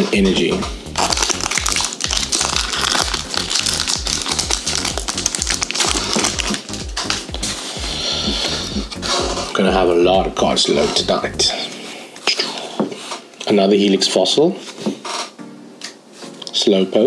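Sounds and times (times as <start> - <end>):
background music with steady beat: 0.0 - 17.0
foil wrapper crinkling and tearing: 1.0 - 7.4.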